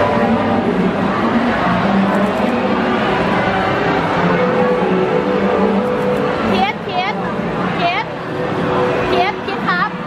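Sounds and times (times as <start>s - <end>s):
crowd of voices talking: 0.0s - 10.0s.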